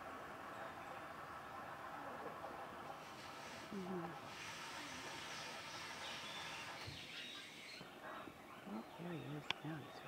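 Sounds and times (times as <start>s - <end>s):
steady high hiss: 0.0s - 10.0s
thin bird chirps: 5.6s - 9.8s.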